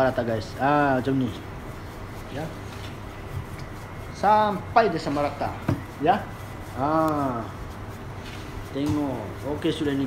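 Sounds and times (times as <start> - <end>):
rolling pin rolling dough: 0.0 - 10.0
person speaking: 2.2 - 2.7, 3.6 - 10.0.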